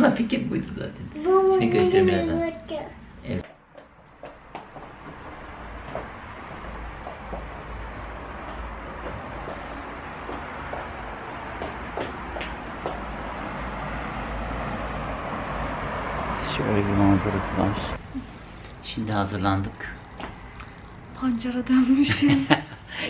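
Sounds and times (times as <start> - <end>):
road traffic noise: 1.6 - 23.0.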